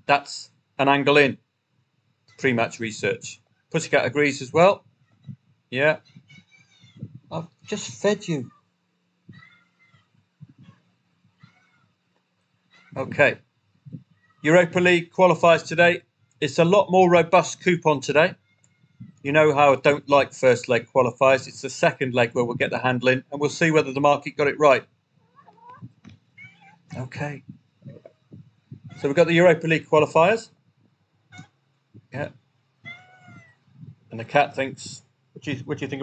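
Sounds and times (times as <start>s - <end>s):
cat meowing faintly: 9.3s - 10.7s, 11.3s - 11.9s, 12.7s - 13.3s, 25.2s - 27.5s, 28.7s - 29.2s, 32.8s - 33.9s.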